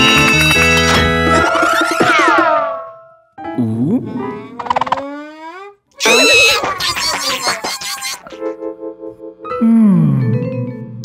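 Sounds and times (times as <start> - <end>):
cartoon wavering cry: 4.8 - 8.4.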